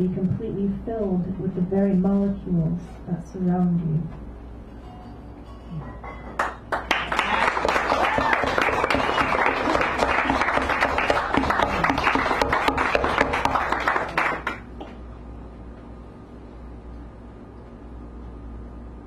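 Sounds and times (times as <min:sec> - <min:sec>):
audience applauding: 0:06.4 - 0:14.7.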